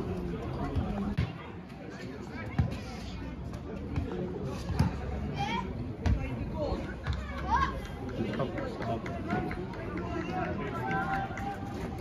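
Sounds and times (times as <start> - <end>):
voices calling and talking: 0.0 - 12.0.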